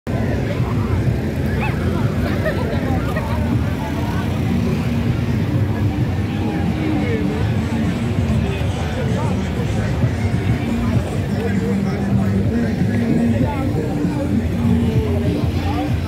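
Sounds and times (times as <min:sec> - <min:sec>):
crowd chatter: 0:00.1 - 0:16.0.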